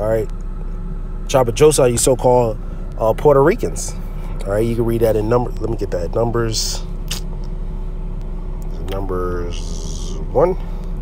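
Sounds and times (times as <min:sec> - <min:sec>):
low background rumble: 0:00.0 - 0:11.0
brief click: 0:07.1 - 0:07.3.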